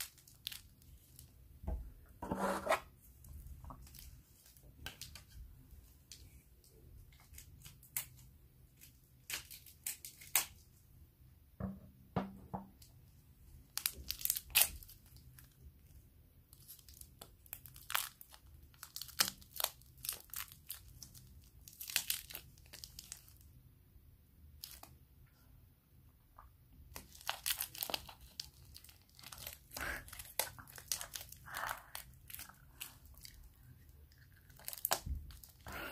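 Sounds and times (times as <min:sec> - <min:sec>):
plastic wrapper crinkling and tearing: 0:00.0 - 0:01.3, 0:03.7 - 0:05.4, 0:06.1 - 0:10.6, 0:13.7 - 0:23.5, 0:24.6 - 0:25.0, 0:26.9 - 0:35.7.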